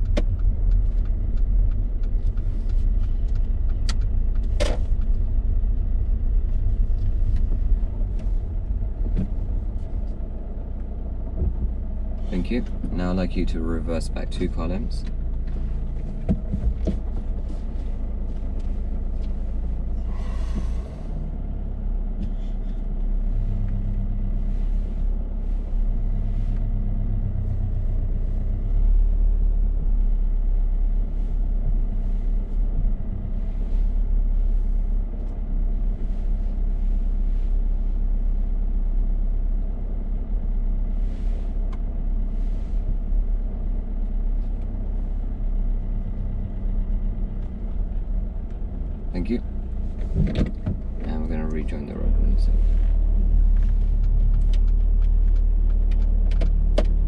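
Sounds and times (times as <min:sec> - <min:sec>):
car engine low rumble: 0:00.0 - 0:57.0.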